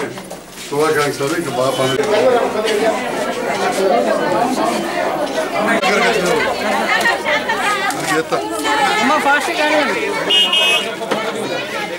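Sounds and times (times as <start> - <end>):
overlapping chatter of voices: 0.0 - 11.9.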